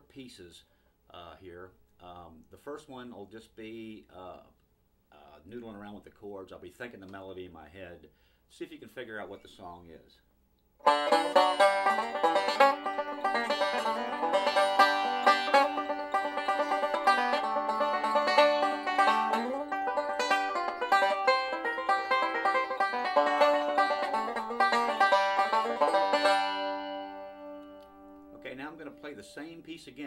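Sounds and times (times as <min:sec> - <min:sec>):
banjo picking rolls: 0:10.8 - 0:30.0.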